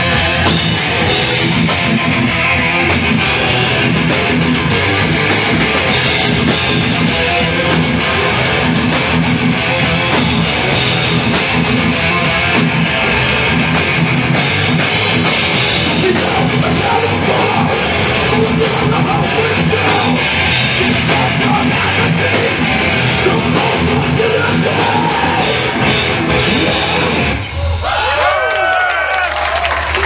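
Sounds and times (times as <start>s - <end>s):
thrash metal band playing: 0.0s - 28.4s.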